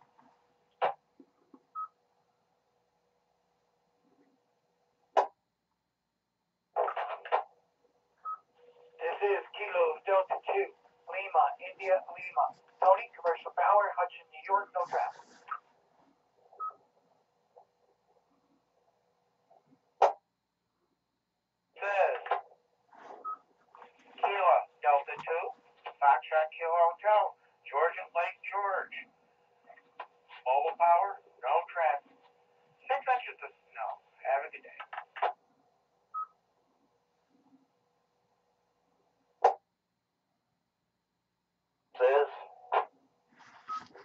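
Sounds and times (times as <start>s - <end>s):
radio hiss: 9.0s - 15.6s, 24.0s - 28.8s.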